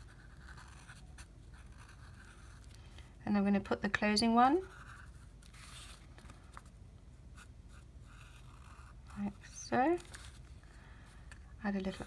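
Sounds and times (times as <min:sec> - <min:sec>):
marker scratching on paper: 0:00.0 - 0:02.7, 0:07.4 - 0:10.0.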